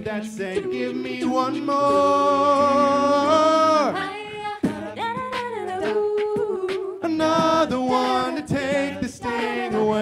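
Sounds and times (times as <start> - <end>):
vocal percussion hits: 0.0 - 10.0.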